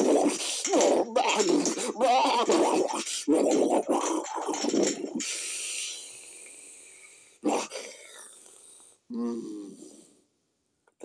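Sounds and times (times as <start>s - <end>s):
man making animal eating noises: 0.0s - 6.0s, 7.4s - 8.4s
long breathy exhale: 5.2s - 9.0s.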